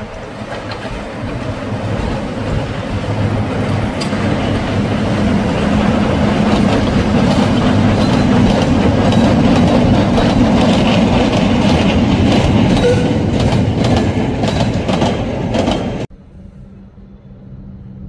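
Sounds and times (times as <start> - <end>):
wheels clicking over rail joints: 0.0 - 2.8, 3.7 - 16.0
miniature train rumbling past: 0.0 - 18.0.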